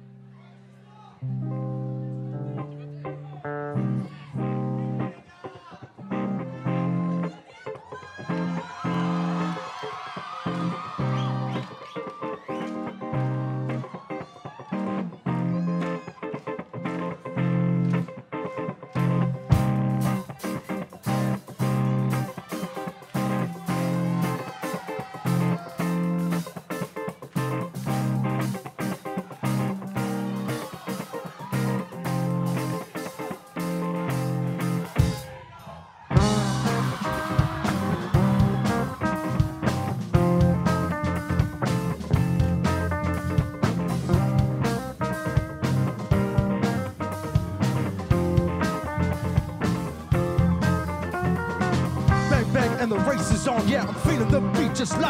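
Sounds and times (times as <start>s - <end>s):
bass guitar: 1.2s - 35.4s, 36.1s - 55.0s
electric guitar: 1.2s - 55.0s
drums and cymbals: 19.5s - 55.0s.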